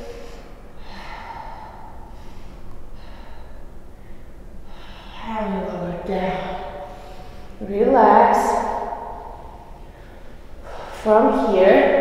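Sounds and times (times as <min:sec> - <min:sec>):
woman breathing quietly: 0:00.0 - 0:07.8, 0:08.8 - 0:11.1.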